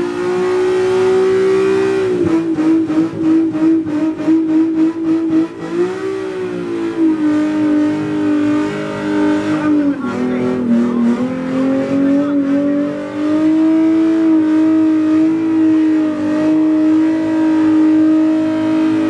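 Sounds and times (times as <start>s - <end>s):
car engine at high revs: 0.0s - 19.0s.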